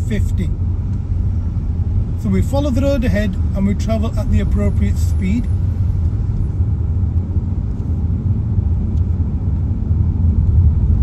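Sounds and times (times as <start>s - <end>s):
car engine rumble: 0.0s - 11.0s
tyres on road: 0.0s - 11.0s.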